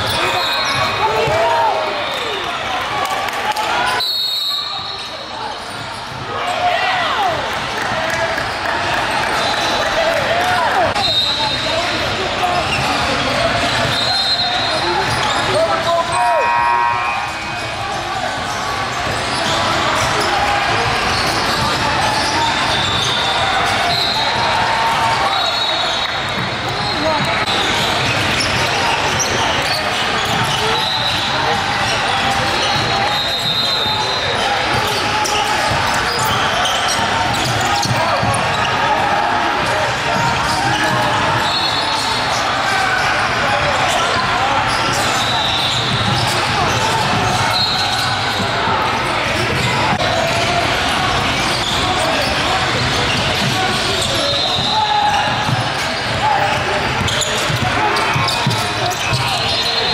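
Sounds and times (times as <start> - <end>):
short high shoe squeaks: 43.8 - 48.5.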